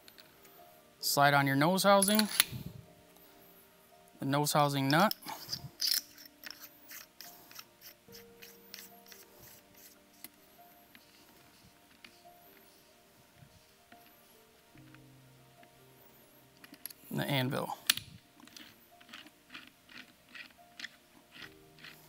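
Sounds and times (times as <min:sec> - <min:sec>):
soft background music: 0:00.0 - 0:22.0
small metallic clicks and scrapes: 0:04.9 - 0:11.2, 0:17.9 - 0:22.0.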